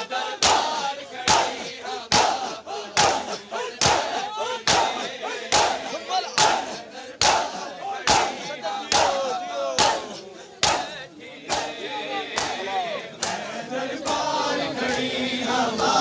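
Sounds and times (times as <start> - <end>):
crowd shouting chants: 0.0 - 16.0
hands slapping chests in unison: 0.4 - 14.3.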